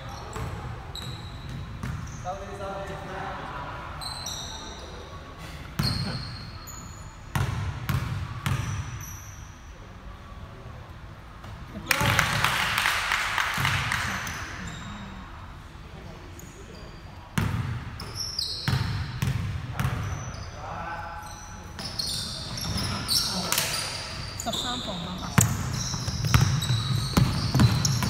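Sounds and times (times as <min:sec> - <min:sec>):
sneaker squeaks: 0:00.0 - 0:02.4, 0:03.9 - 0:09.7, 0:14.1 - 0:15.2, 0:16.4 - 0:20.6, 0:21.2 - 0:28.0.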